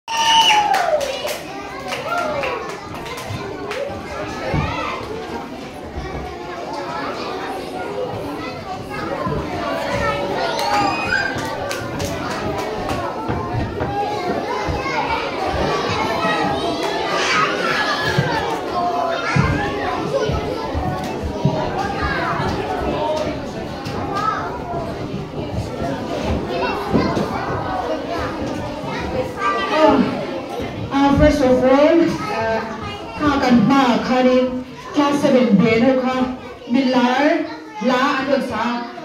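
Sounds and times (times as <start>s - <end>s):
children calling and chattering: 0.1s - 39.0s.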